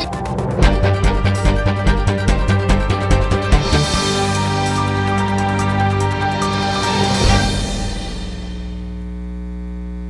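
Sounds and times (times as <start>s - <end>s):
theme music: 0.0s - 9.0s
electrical mains hum: 8.2s - 10.0s.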